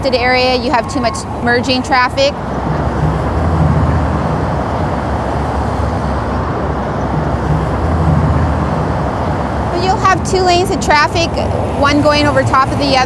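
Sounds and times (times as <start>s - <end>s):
heavy vehicle rumble: 0.0s - 13.0s
traffic roar: 0.0s - 13.0s.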